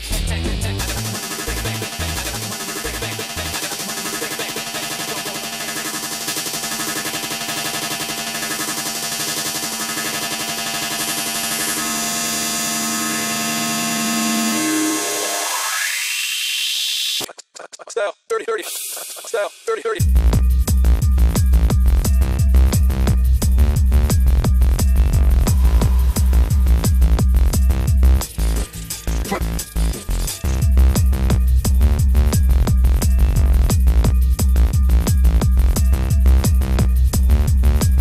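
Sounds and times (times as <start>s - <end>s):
techno kick drum: 0.0s - 14.1s, 20.0s - 38.0s
sustained synth chord: 0.8s - 16.0s, 20.9s - 38.0s
rising synth sweep: 0.8s - 17.2s.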